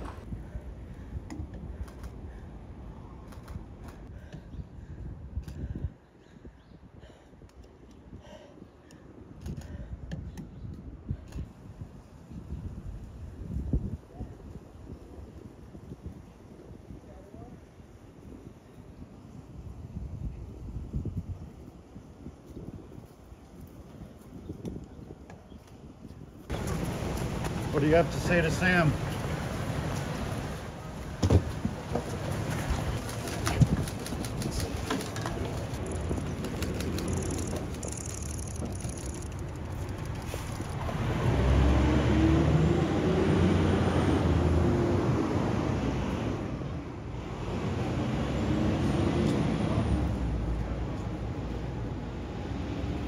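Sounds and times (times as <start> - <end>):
faint street ambience: 0.0 - 53.0
vehicle engine hum: 28.9 - 53.0.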